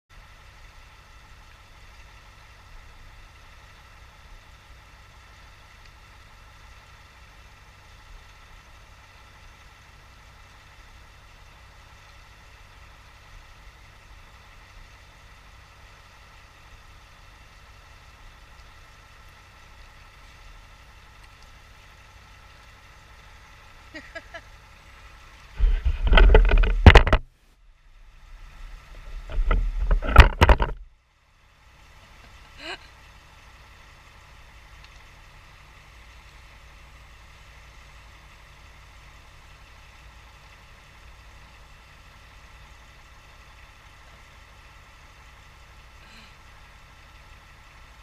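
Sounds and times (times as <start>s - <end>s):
distant engine idling: 0.1s - 48.0s
faint steady whine: 0.1s - 48.0s.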